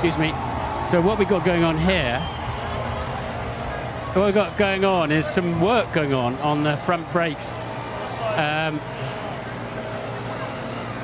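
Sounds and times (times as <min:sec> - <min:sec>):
busy racing grid noise: 0:00.0 - 0:11.0
low machine hum: 0:00.0 - 0:11.0.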